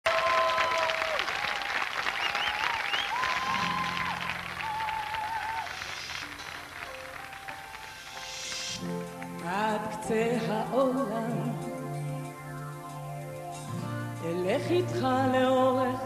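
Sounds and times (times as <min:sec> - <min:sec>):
audience applause: 0:00.0 - 0:09.4
instrumental song introduction: 0:03.5 - 0:16.0.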